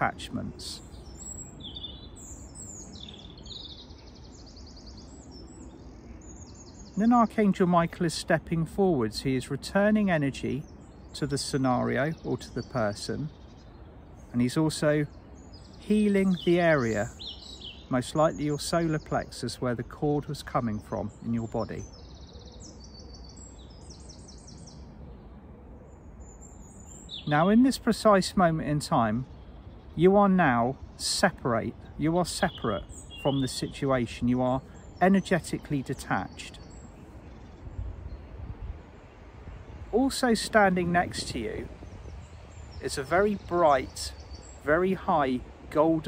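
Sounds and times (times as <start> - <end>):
low outdoor background noise: 0.0 - 46.0
songbirds trilling: 0.0 - 46.0.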